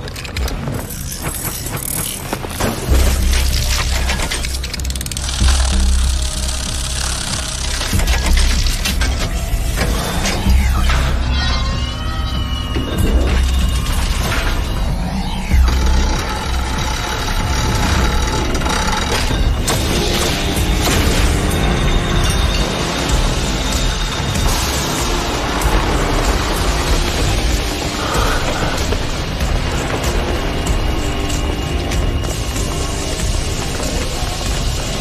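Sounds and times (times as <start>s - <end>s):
metallic clicks and ratcheting: 0.0s - 9.4s
background music: 0.0s - 35.0s.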